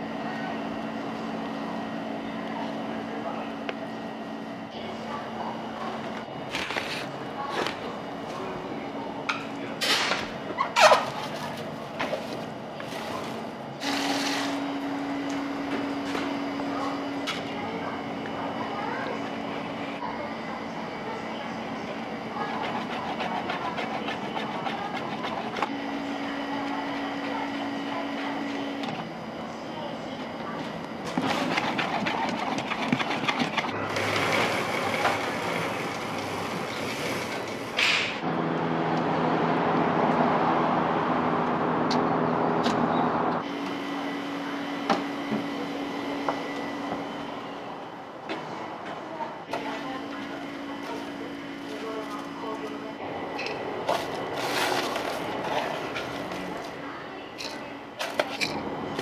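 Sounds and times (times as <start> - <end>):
machine hum: 11.7 - 57.0.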